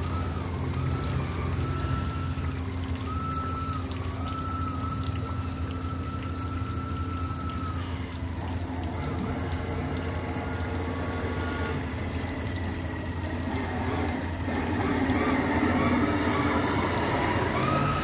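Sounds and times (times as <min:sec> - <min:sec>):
model boat motor running: 0:00.0 - 0:18.0
propeller churning water: 0:00.0 - 0:18.0.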